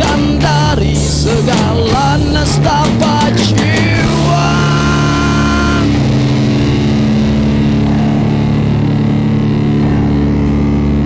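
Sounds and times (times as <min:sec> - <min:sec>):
distorted electric guitar chords: 0:00.0 - 0:11.0.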